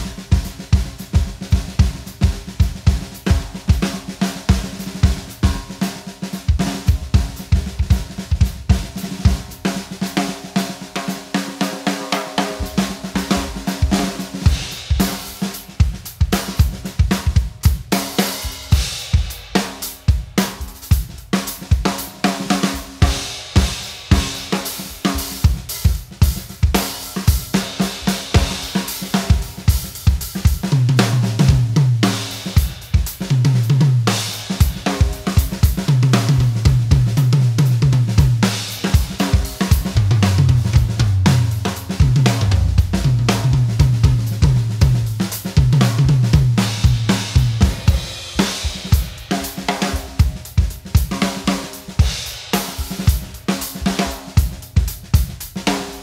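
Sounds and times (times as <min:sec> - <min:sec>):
bass drum: 0:00.0 - 0:09.9, 0:12.4 - 0:56.0
snare drum: 0:00.0 - 0:56.0.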